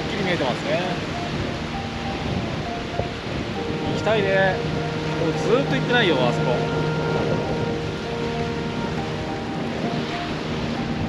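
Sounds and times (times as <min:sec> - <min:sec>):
small waves washing on sand: 0:00.0 - 0:11.0
wind on microphone: 0:00.0 - 0:11.0.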